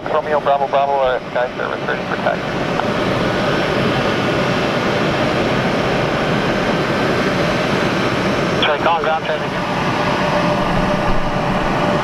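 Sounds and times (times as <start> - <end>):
faint steady whine: 0.0 - 12.0
jet engines idling: 0.0 - 12.0.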